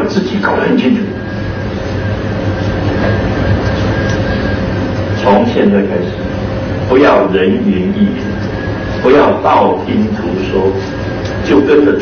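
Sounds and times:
thin steady hum: 0:00.0 - 0:12.0.

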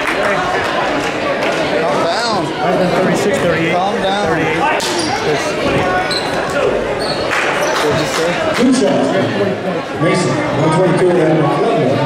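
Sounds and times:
people's voices: 0:00.0 - 0:12.0.

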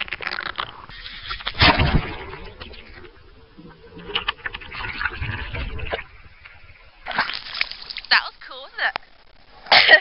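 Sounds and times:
muffled underwater bubbling: 0:00.0 - 0:08.4
water splash: 0:01.0 - 0:03.0, 0:04.0 - 0:08.2.

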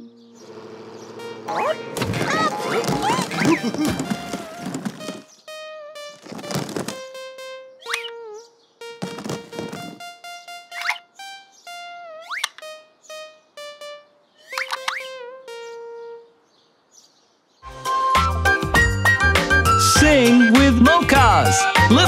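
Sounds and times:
cartoon background music: 0:01.0 - 0:16.5, 0:17.6 - 0:22.0.

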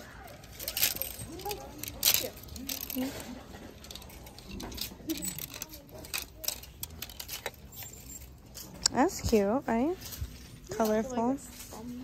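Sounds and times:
faint murmur of voices: 0:00.0 - 0:12.0
plastic hangers scraping on metal rail: 0:00.3 - 0:09.4.

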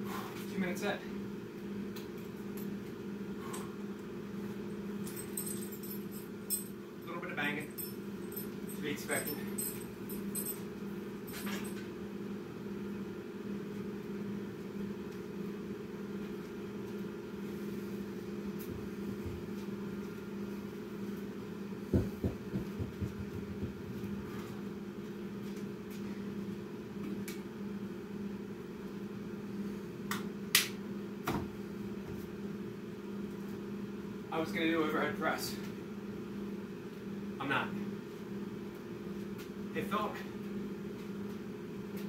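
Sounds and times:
low machine hum: 0:00.0 - 0:42.0.

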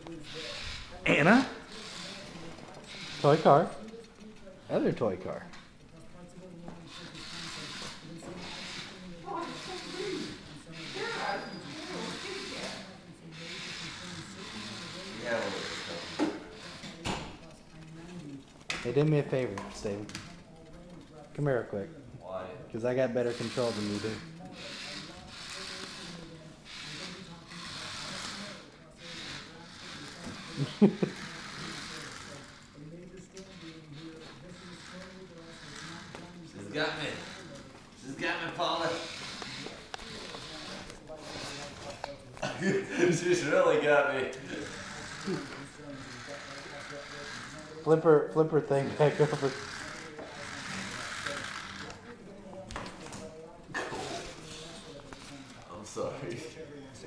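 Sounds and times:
toy car motor whirring: 0:00.0 - 0:21.8, 0:23.0 - 0:42.2, 0:43.1 - 0:52.3, 0:53.2 - 0:56.6
faint voices: 0:00.0 - 0:57.0.

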